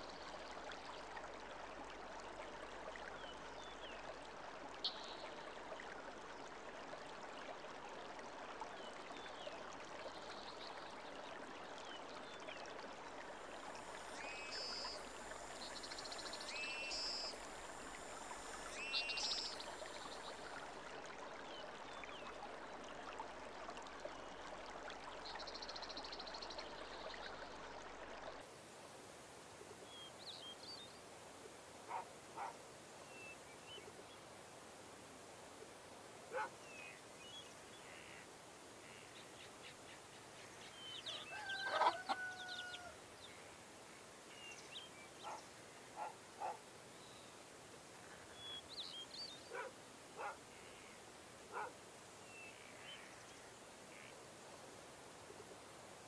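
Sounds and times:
steady hiss: 13.5 - 20.5, 28.4 - 36.3.

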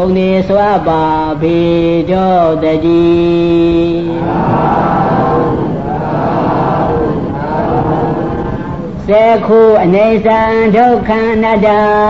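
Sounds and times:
monk chanting in a low voice: 0.0 - 12.0.

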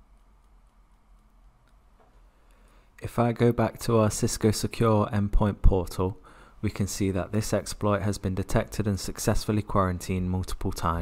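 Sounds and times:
light ticks: 0.1 - 2.6.

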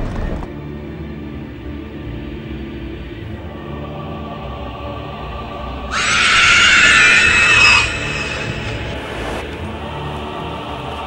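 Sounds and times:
dark ominous background music: 0.0 - 11.0
loud high shriek: 5.9 - 9.6.

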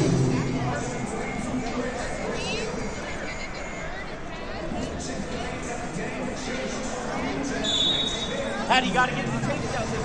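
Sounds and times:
crowd chatter echoing in hall: 0.0 - 10.0
referee's whistle blast: 7.6 - 8.4.

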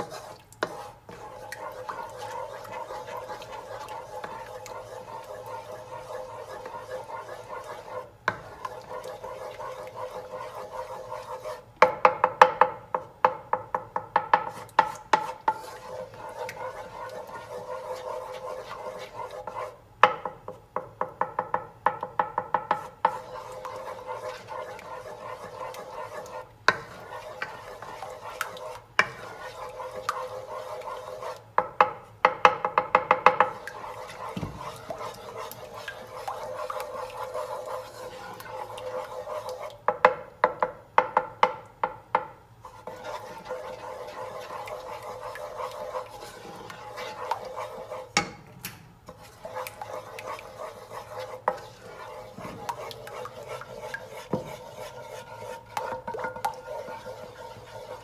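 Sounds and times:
wooden spoon scraping saucepan: 0.0 - 13.1, 14.2 - 20.6, 21.3 - 41.3, 42.2 - 48.5, 49.1 - 58.0.

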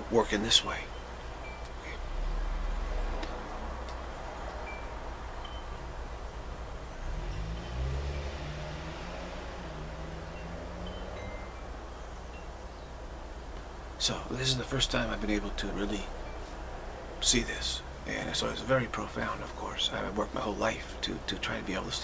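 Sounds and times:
wind chimes tinkling: 0.0 - 2.4, 4.4 - 13.4, 14.0 - 20.8.

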